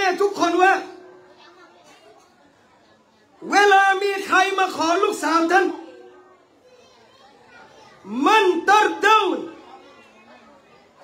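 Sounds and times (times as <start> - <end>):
faint background voices: 0.8 - 4.3, 5.5 - 11.0.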